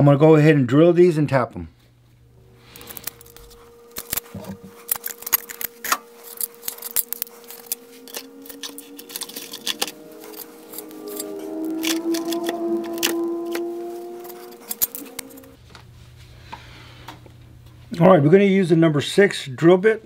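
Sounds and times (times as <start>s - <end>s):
soft background music: 6.2s - 15.6s
metallic clicks of engine parts: 14.2s - 15.5s.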